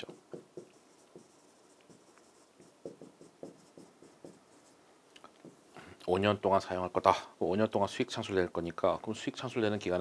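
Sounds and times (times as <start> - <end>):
stylus writing on touchscreen: 0.0 - 4.8.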